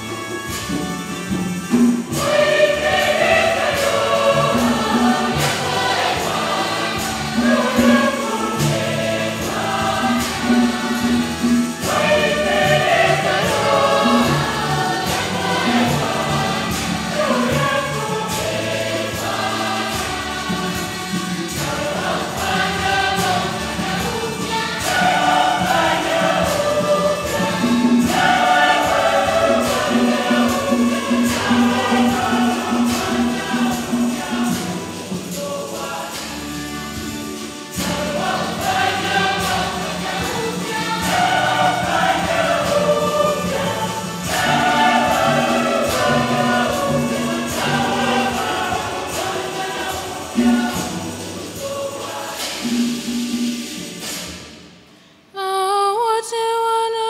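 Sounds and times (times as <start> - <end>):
church choir singing: 0.0 - 54.9
instrumental accompaniment: 0.0 - 55.3.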